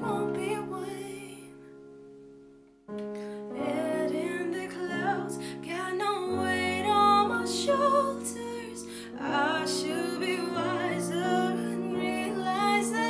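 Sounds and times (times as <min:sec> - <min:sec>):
woman singing: 0:00.0 - 0:01.6, 0:03.0 - 0:13.0.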